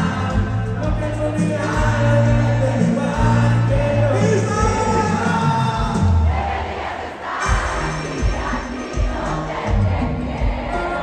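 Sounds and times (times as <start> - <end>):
bass drum beat: 0.0 - 6.4, 7.4 - 11.0
large crowd noise: 0.0 - 11.0
live band music: 0.0 - 11.0.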